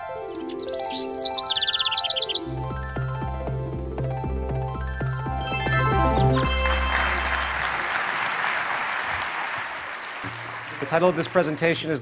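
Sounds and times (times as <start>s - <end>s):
instrumental music: 0.0s - 8.2s
audience applause: 6.3s - 12.0s.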